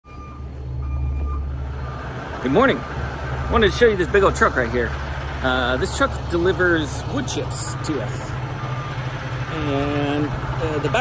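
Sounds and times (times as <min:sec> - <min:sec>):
diesel truck engine idling: 0:00.1 - 0:11.0.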